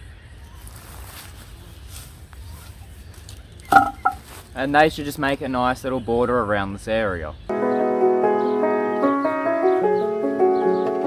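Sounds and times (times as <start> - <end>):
hands rustling dry grass: 0.4 - 4.8.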